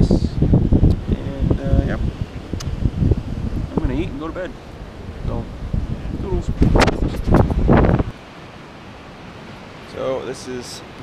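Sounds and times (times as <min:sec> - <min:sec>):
wind buffeting microphone: 0:00.0 - 0:08.2
surf: 0:00.0 - 0:11.0.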